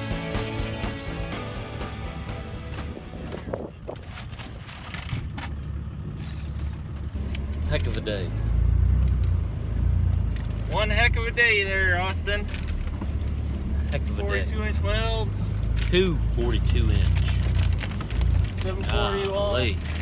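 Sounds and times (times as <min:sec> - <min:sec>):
truck engine and road rumble: 0:00.0 - 0:20.0.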